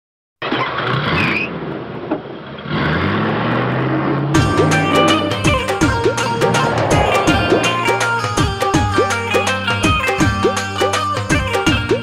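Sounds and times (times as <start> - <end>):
truck engine revving: 2.5 - 9.0.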